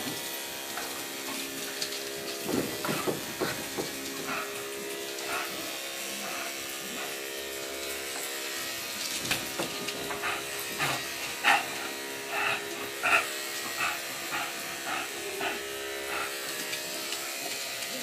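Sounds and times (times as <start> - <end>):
electric clippers humming: 0.0 - 18.0
dogs play growling and yipping: 2.3 - 17.6.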